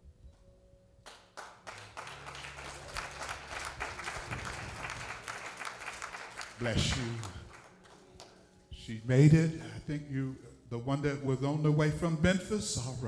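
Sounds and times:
congregation clapping: 0:01.0 - 0:08.6.

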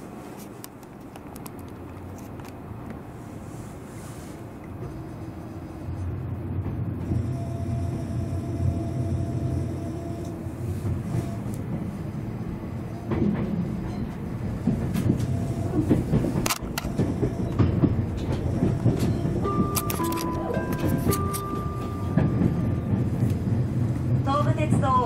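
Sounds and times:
train low rumble: 0:00.0 - 0:25.0
track clicks and knocks: 0:13.0 - 0:23.5.

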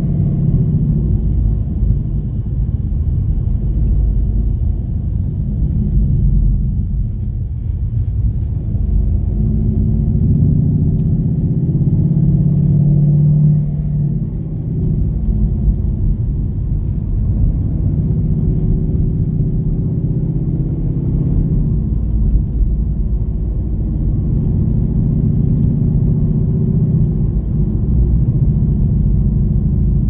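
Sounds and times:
car engine drone: 0:00.0 - 0:30.0
road rumble: 0:00.0 - 0:30.0.

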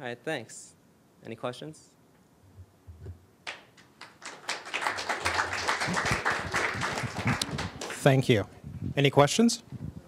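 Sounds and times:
audience applauding: 0:03.4 - 0:08.2.

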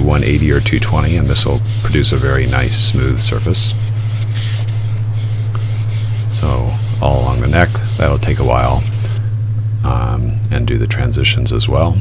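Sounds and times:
sanding strip rubbing wood: 0:00.0 - 0:09.2
low hum: 0:00.0 - 0:12.0.

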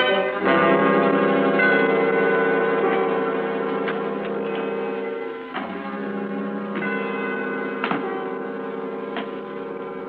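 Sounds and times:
bell-like chimes: 0:00.0 - 0:10.0
held low chord: 0:00.0 - 0:10.0.

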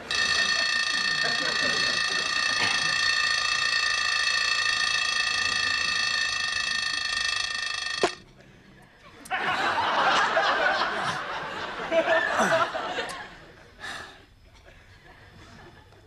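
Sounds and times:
alarm clock ringing: 0:00.0 - 0:08.2.

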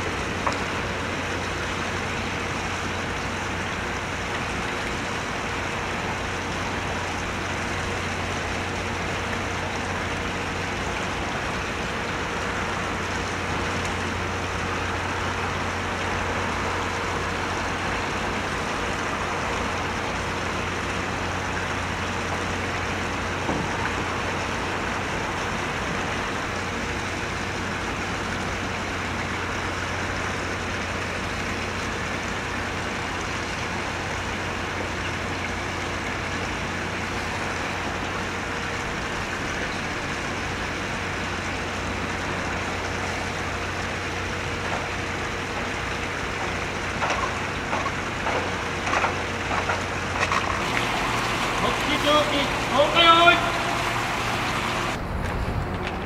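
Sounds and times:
machinery hum with rushing noise: 0:00.0 - 0:56.0.

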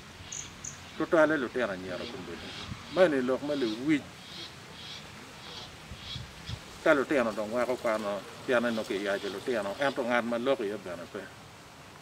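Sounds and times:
cricket chirps: 0:00.2 - 0:01.0
man speaking: 0:01.0 - 0:04.1, 0:06.8 - 0:11.4.

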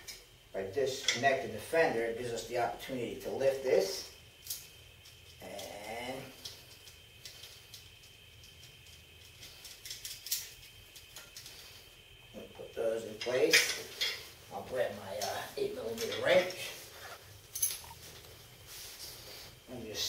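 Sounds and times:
metal bolts and tools clinking: 0:17.5 - 0:18.0.

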